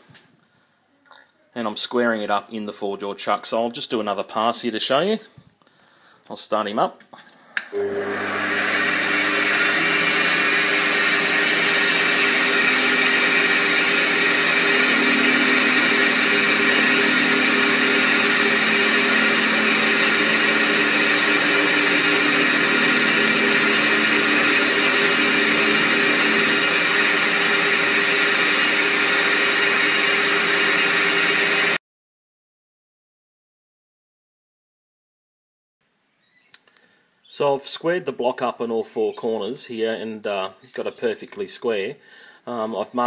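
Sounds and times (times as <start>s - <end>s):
lathe motor and gear whine: 7.8s - 31.8s.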